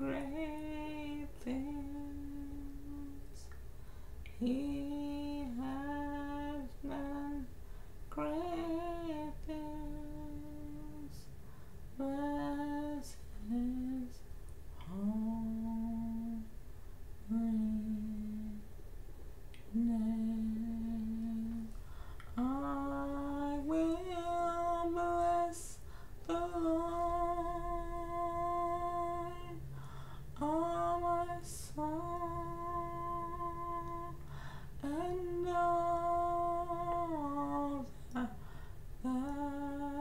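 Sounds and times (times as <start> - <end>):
woman humming: 0.0 - 3.5.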